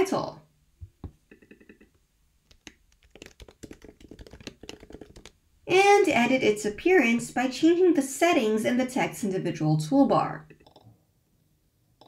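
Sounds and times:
typing on computer keyboard: 2.5 - 5.4.

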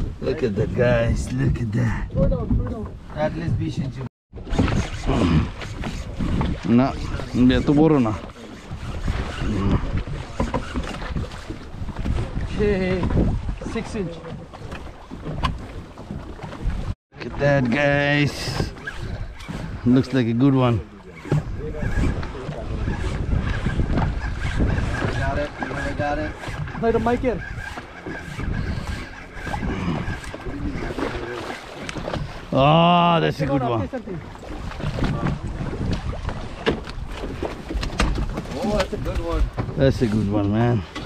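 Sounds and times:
choppy sea: 0.0 - 41.0
wind rumbling on microphone: 0.0 - 41.0.

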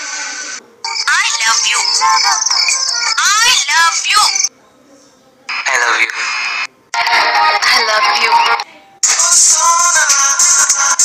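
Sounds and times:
person singing over music: 9.0 - 11.0.

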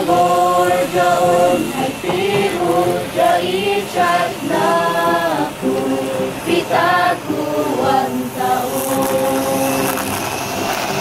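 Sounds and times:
choir holding sustained chord: 0.0 - 11.0.

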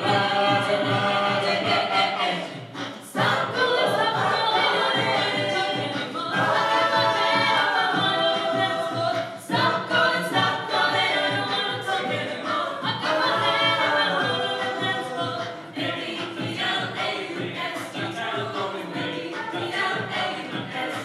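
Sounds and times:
choir singing in harmony: 0.0 - 21.0.

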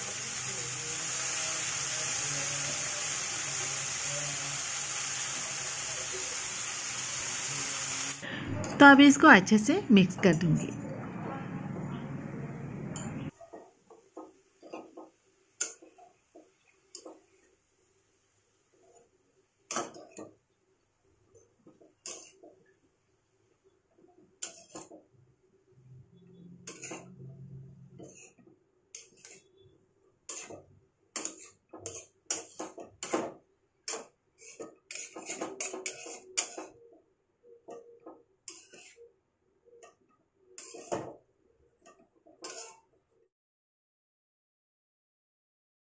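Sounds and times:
metal spatula scraping metal pan: 22.0 - 22.4, 24.4 - 24.9, 26.6 - 27.3, 28.0 - 29.7, 30.3 - 30.6, 31.2 - 33.2, 33.9 - 36.8, 38.4 - 39.0, 40.6 - 41.1, 42.4 - 42.9.

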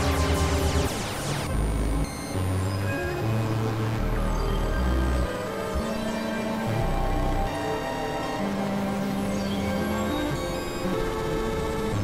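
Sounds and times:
experimental synthesizer music: 0.0 - 12.0.

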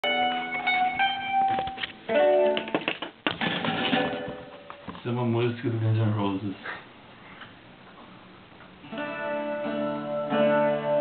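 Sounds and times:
guitar plucked notes and chords: 0.0 - 4.9, 8.8 - 11.0.

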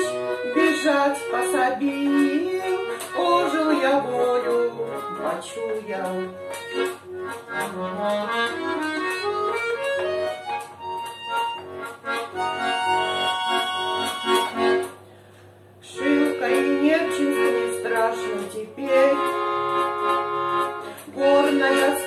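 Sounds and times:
button accordion playing: 0.0 - 15.0, 15.8 - 22.0.

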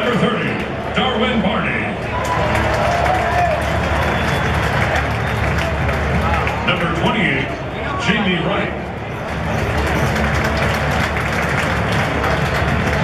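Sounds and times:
announcer voice echoing: 0.0 - 2.0, 6.6 - 8.8
stadium crowd applauding and cheering: 0.0 - 13.0.

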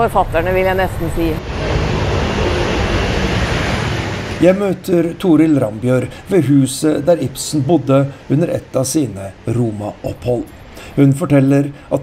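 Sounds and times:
passing traffic: 0.0 - 12.0.

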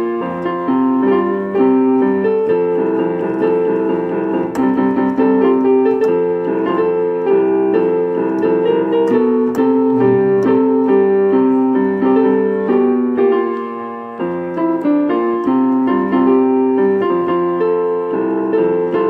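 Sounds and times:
keyboard playing piano tune: 0.0 - 19.0.

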